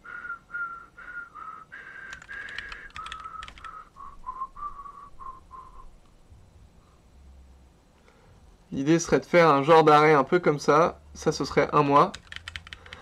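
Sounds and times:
person whistling a tune: 0:00.0 - 0:02.1, 0:03.0 - 0:05.9
computer keyboard typing: 0:02.1 - 0:03.8, 0:11.8 - 0:13.0.

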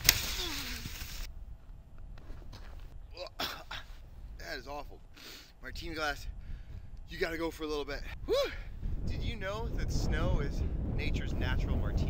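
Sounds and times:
sled hissing over snow: 0:00.0 - 0:01.3.

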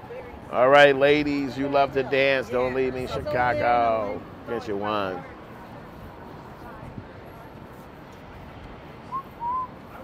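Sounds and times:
street noise: 0:00.0 - 0:10.0
whistled notes: 0:09.1 - 0:09.7.

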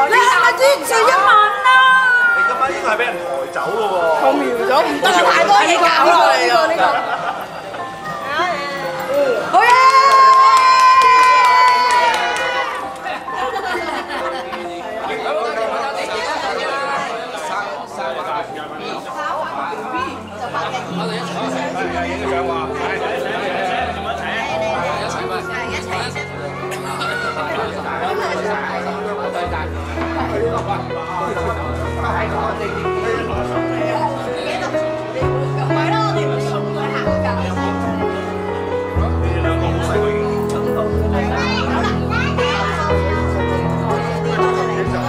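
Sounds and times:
people shouting and whooping: 0:00.0 - 0:02.8, 0:09.5 - 0:12.9
long high cheer: 0:09.5 - 0:13.0
people chatting: 0:12.1 - 0:45.0.

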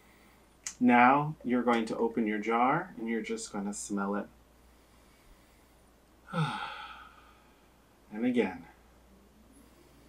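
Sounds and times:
man sighing: 0:06.2 - 0:07.6.

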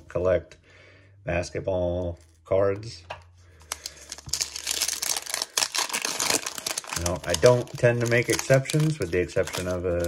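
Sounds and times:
foil wrapper crinkling: 0:03.6 - 0:10.0.

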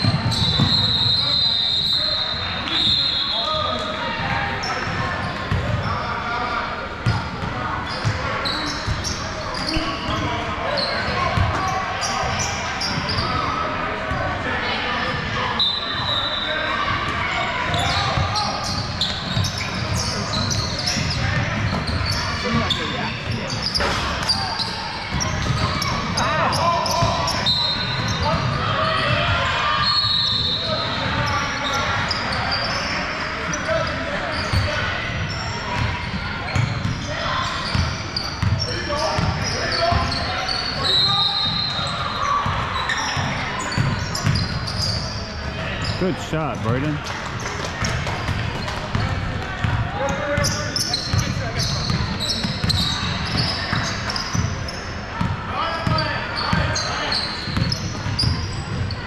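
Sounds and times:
indistinct voices: 0:45.9 - 0:47.0.

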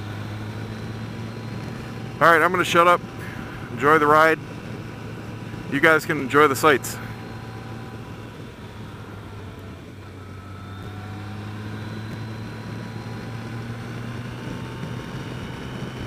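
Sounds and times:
motorcycle engine humming: 0:00.0 - 0:16.0
road and wind noise: 0:00.0 - 0:16.0.

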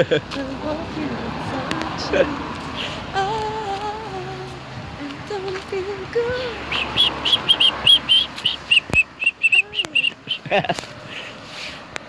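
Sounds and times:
bird chirping: 0:06.5 - 0:10.5.

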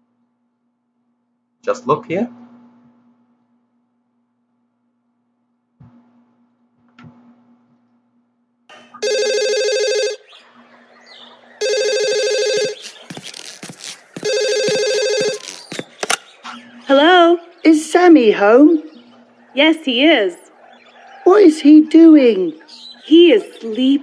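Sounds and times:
electronic telephone ringing: 0:09.0 - 0:10.3, 0:11.6 - 0:13.0, 0:14.2 - 0:16.0.

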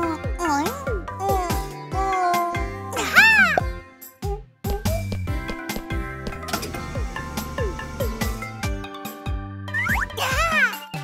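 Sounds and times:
cartoon background music: 0:00.0 - 0:11.0
cartoon character cry: 0:01.3 - 0:03.6, 0:10.2 - 0:10.8.

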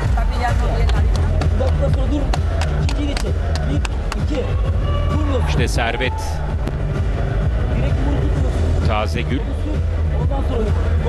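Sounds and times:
arena music with heavy bass: 0:00.0 - 0:11.0.

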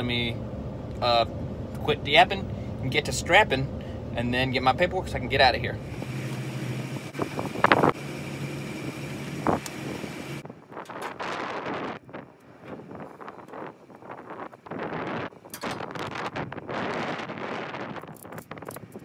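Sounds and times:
wind gusting on microphone: 0:00.0 - 0:08.1, 0:08.8 - 0:19.0
steady low hum: 0:00.0 - 0:10.6
ratchet straps rustling and knocking: 0:18.0 - 0:19.0.

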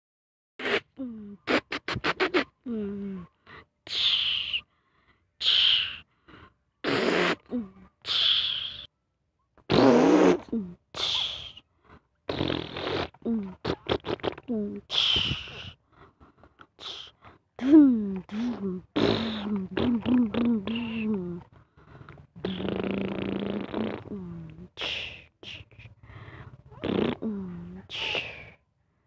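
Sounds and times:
child making truck noises: 0:16.8 - 0:21.5, 0:26.6 - 0:28.6.

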